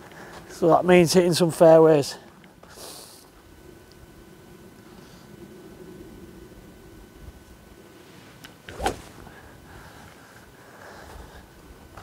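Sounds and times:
golf club swishing through air: 8.0 - 9.4.

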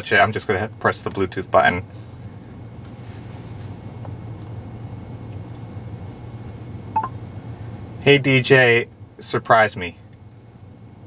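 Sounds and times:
short high phone beep: 7.0 - 7.2.

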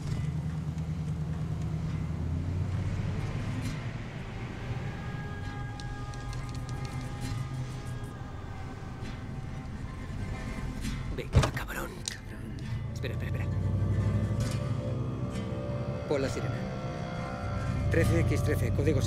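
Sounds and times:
car engine pulling hard: 0.0 - 6.8, 12.8 - 16.2
film score sustained notes: 0.0 - 19.0.

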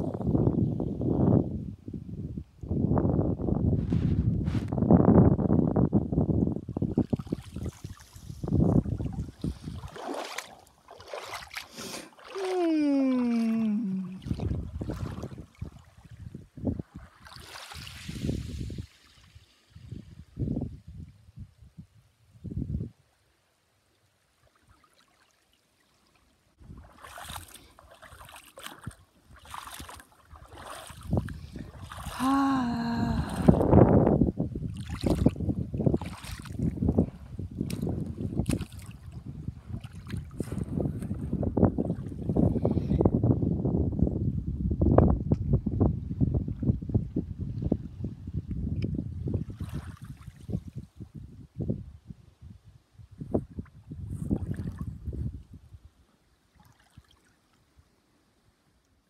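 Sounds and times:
wind buffeting microphone: 0.0 - 10.3, 13.2 - 23.0, 26.6 - 27.5, 28.8 - 55.9
water lapping on pebbles: 7.0 - 13.6, 16.8 - 19.4, 24.4 - 32.3, 34.7 - 36.8, 37.6 - 41.2
brief vocal cry: 12.4 - 14.2, 32.2 - 33.6.

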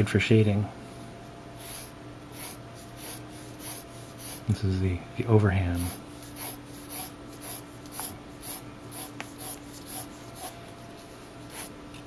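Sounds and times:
pencil scratching on paper: 1.6 - 4.4, 5.8 - 10.6, 11.5 - 11.7.

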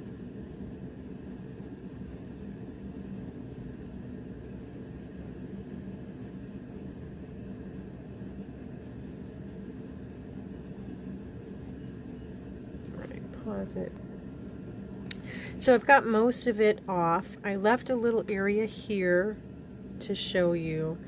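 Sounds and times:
faint steady tone: 0.0 - 21.0.

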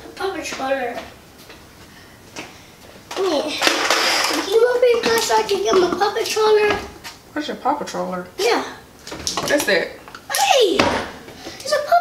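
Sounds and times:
child's high drawn-out voice: 10.3 - 11.0, 11.6 - 12.0.

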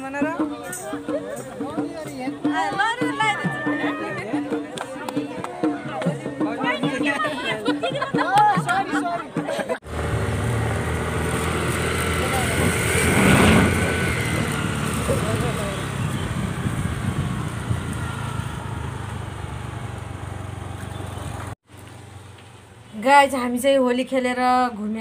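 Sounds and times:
scooter engine hum: 9.8 - 22.8
wind noise on microphone: 10.5 - 19.8.

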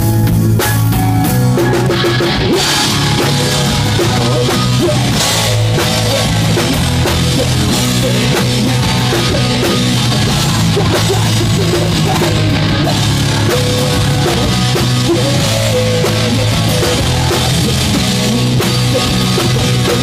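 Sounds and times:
distorted electric guitar: 0.0 - 20.0
drum kit: 0.0 - 20.0
person singing: 2.5 - 20.0.

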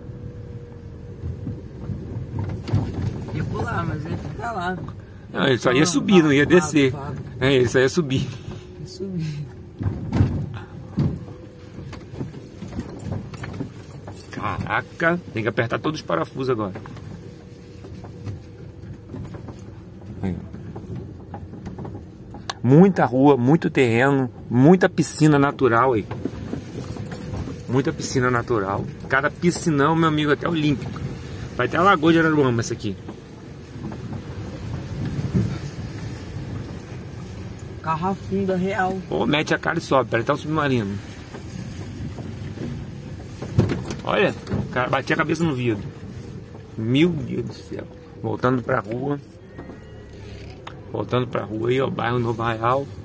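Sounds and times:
low rumble of car: 0.0 - 53.0
suspension thuds: 0.8 - 53.0
interior rattles: 1.0 - 53.0.

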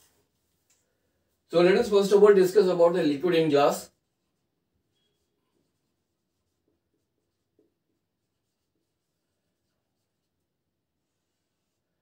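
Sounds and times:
marker writing on whiteboard: 1.5 - 11.9.

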